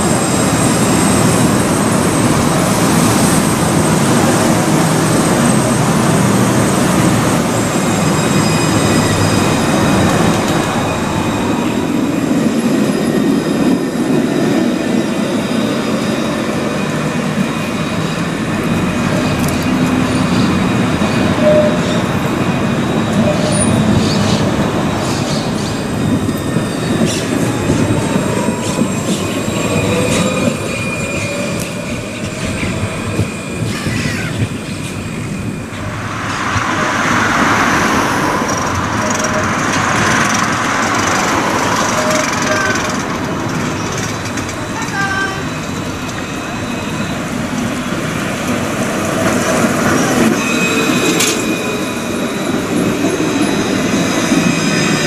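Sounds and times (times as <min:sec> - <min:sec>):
trams rumbling past: 0:00.0 - 0:55.0
wheel-on-rail squeal: 0:00.2 - 0:55.0
rising whine: 0:34.5 - 0:42.0.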